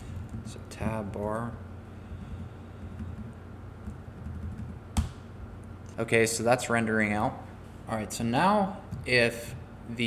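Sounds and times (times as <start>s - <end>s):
faint low hum: 0.0s - 10.0s
computer keyboard keystrokes: 3.0s - 5.2s.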